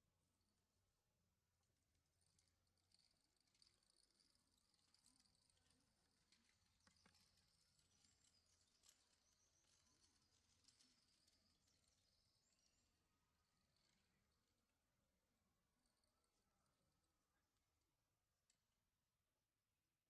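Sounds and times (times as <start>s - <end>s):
faint high-pitched bird chirping: 3.6s - 14.4s.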